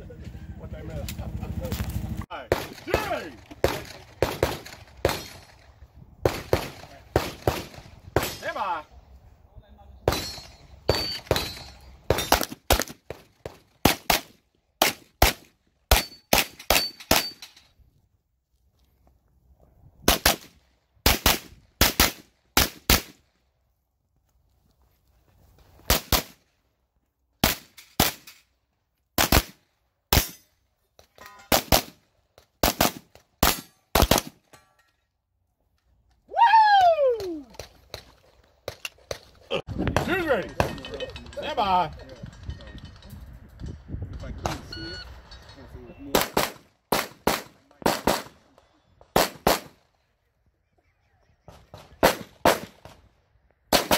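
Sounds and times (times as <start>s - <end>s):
rifle gunshots: 2.5s - 5.6s, 6.2s - 8.6s, 20.1s - 23.2s, 29.2s - 30.3s, 31.5s - 32.0s, 32.6s - 34.4s, 46.1s - 48.4s, 49.1s - 49.8s, 51.7s - 53.0s.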